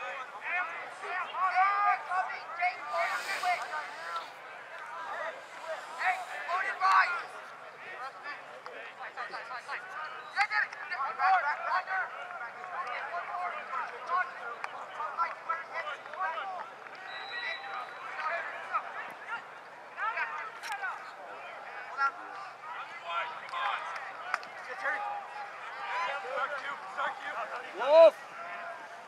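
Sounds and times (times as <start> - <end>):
players and spectators shouting: 0.1 - 8.2, 9.4 - 29.0.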